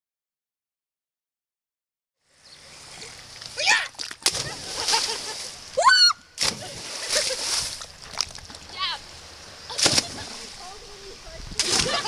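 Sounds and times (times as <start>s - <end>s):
water splashing: 2.6s - 12.0s
people shouting: 3.6s - 4.6s, 5.8s - 6.4s
rising whoop: 5.8s - 6.3s.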